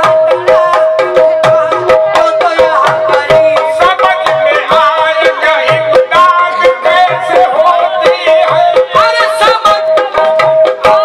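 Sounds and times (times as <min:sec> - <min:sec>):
man singing ornamented line: 0:00.0 - 0:11.0
tabla strokes: 0:00.0 - 0:11.0.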